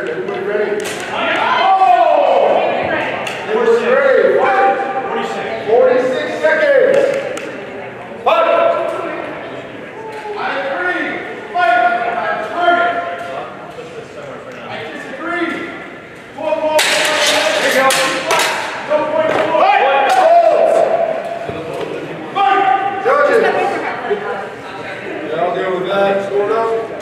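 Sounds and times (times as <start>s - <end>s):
voices in a large hall: 0.0s - 27.0s.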